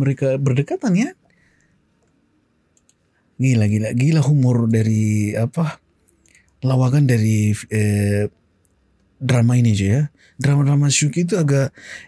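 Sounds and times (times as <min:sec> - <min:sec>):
faint computer mouse clicks: 0:01.6 - 0:03.0.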